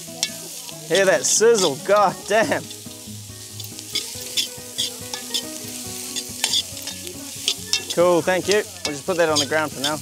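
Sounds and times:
vegetables sizzling in a pot: 0.0s - 10.0s
utensil scraping pot: 3.6s - 10.0s.

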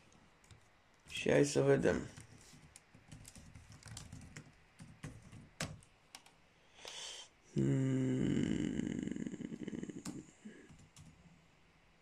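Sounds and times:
typing on computer keyboard: 2.0s - 6.4s, 10.0s - 11.2s.

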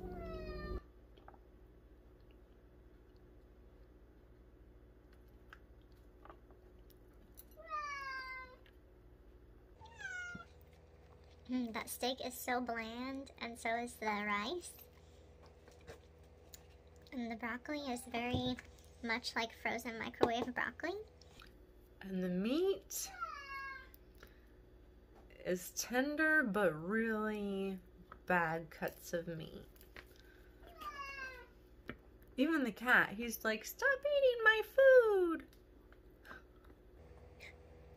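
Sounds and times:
cat meowing: 0.0s - 0.8s, 7.6s - 8.6s, 9.8s - 10.5s, 30.7s - 31.5s.

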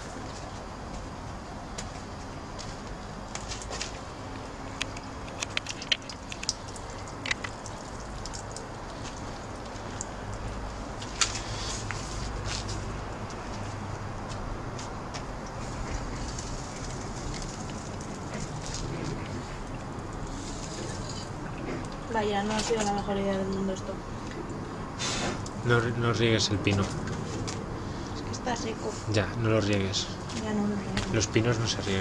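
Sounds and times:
distant city traffic rumble: 0.0s - 32.0s.

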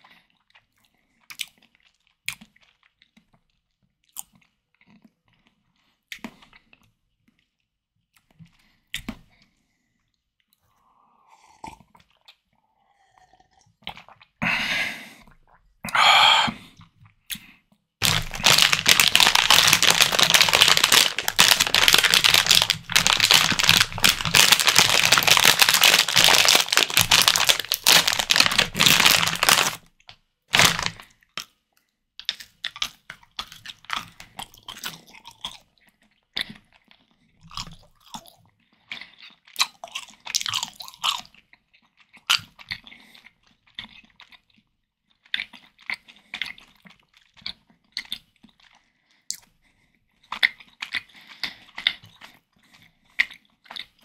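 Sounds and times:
close chewing of candy: 0.0s - 54.0s
plastic bags crinkling: 18.0s - 29.8s, 30.5s - 31.0s.

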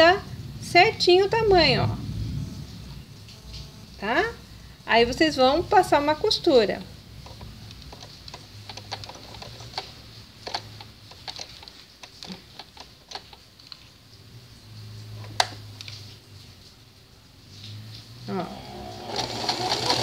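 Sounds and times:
sewing machine humming: 18.4s - 20.0s.

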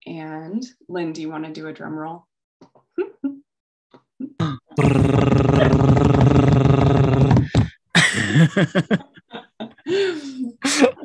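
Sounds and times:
short mouth sounds: 4.4s - 7.7s
man's vocal drum roll: 4.8s - 8.5s.

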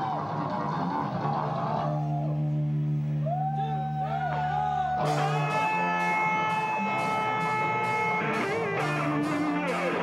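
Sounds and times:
loud rock band playing: 3.8s - 10.0s.

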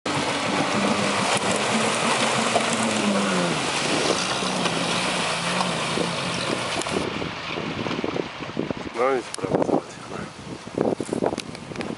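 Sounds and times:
engine revving under load: 0.1s - 7.3s
tyres churning and splashing: 0.1s - 10.0s.

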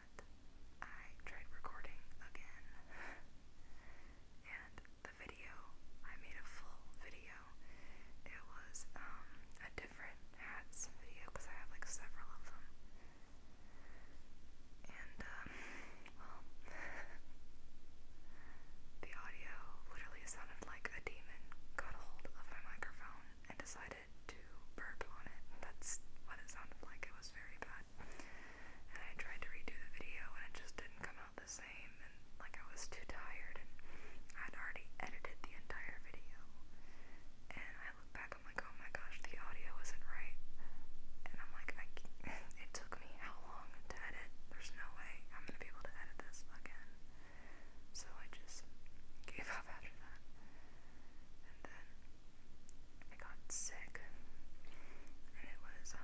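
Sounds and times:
woman whispering: 0.0s - 3.3s, 4.4s - 7.6s, 8.2s - 12.7s, 14.8s - 17.2s, 19.0s - 27.9s, 28.9s - 36.7s, 37.5s - 40.4s, 41.2s - 47.0s, 47.9s - 50.2s, 51.4s - 52.0s, 53.0s - 54.3s, 55.3s - 56.0s.

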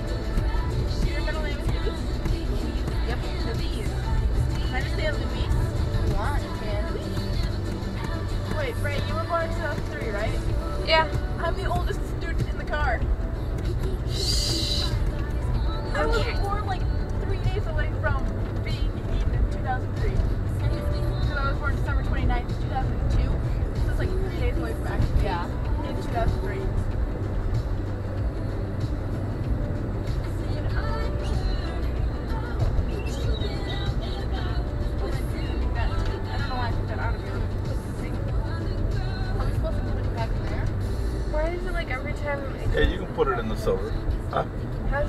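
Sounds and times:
car engine and tyres on road: 0.0s - 45.0s
music: 0.0s - 45.0s.

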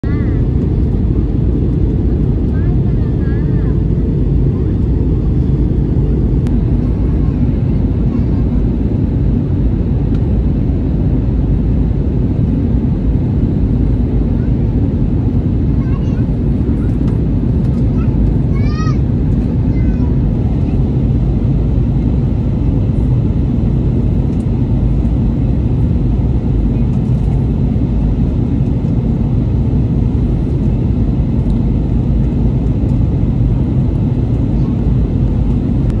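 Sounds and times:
airliner cabin engine rumble: 0.0s - 36.0s.

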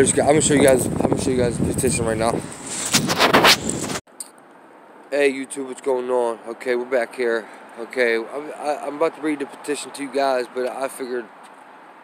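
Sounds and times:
phone microphone scraping and rustling: 0.6s - 4.1s.

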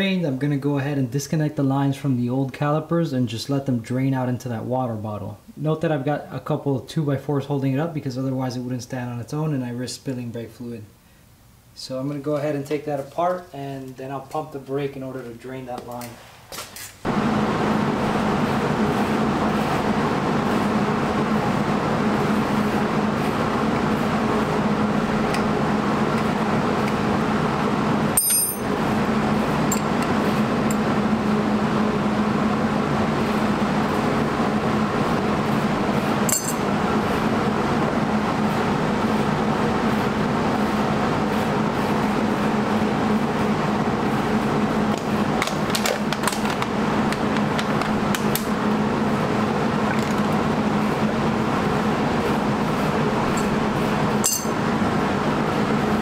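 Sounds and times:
steady whirring hum: 0.0s - 56.0s
sharp metallic clinks: 28.2s - 28.7s, 36.3s - 36.7s, 54.2s - 54.6s.

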